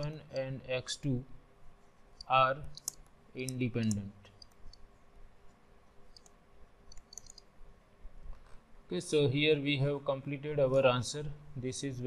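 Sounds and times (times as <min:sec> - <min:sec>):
faint steady hum: 0:00.0 - 0:12.0
pen clicks on screen: 0:06.2 - 0:07.5.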